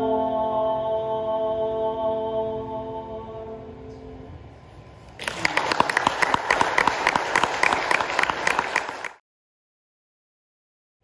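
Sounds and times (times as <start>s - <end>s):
audience applauding: 5.2s - 9.2s.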